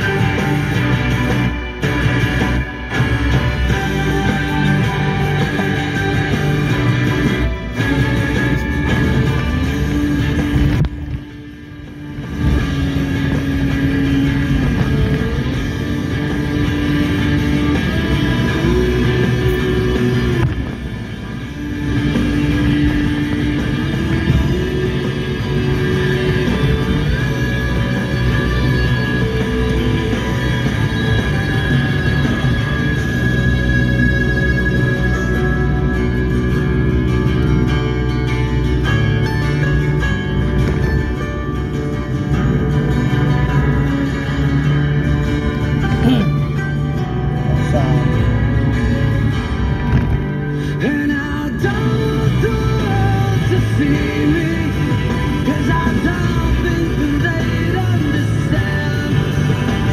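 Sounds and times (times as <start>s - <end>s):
rock music on car radio: 0.0s - 59.9s.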